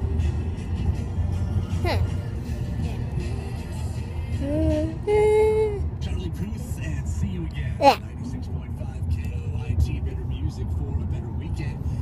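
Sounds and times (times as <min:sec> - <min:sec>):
vehicle rumble: 0:00.0 - 0:12.0.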